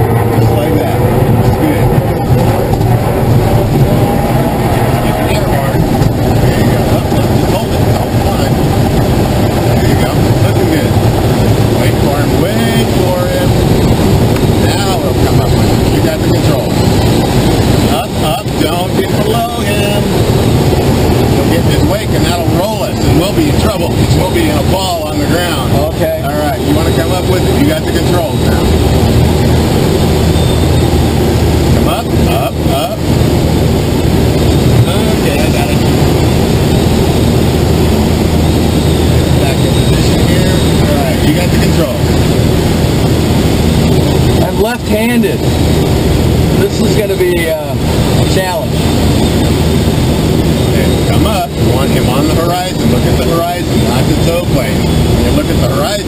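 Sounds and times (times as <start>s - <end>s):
air rushing in glider cockpit: 0.0s - 56.0s.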